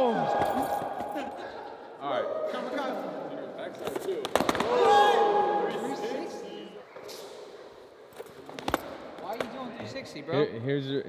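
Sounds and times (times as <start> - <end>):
person shouting: 4.6 - 6.1.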